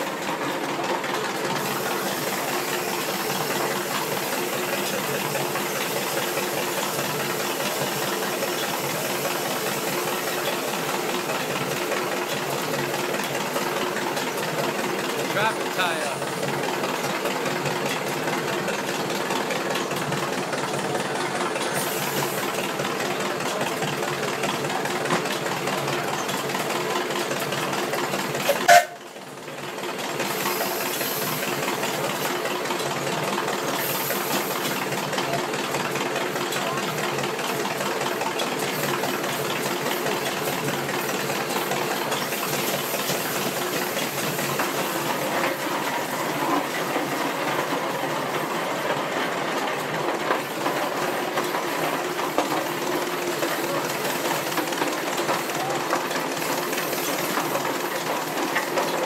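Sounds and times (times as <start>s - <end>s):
steam engine chuffing: 0.0s - 59.0s.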